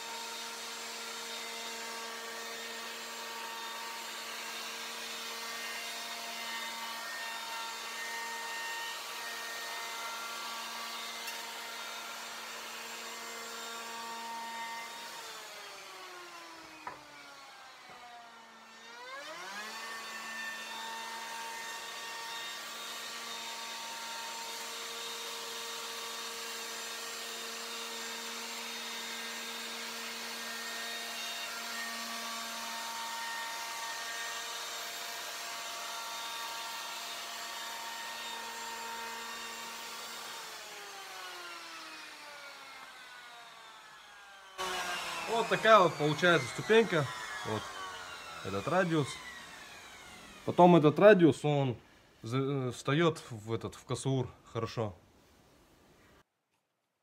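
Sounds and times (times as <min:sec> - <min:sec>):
electric router cutting wood: 0:00.0 - 0:51.3.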